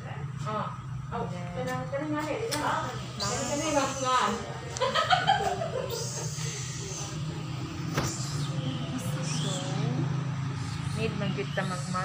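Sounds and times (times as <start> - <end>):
steady low hum: 0.0 - 12.0
people talking indistinctly: 0.4 - 12.0.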